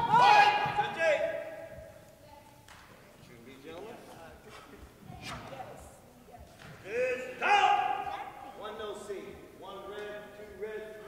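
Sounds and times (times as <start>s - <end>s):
faint voices echoing: 0.0s - 11.0s.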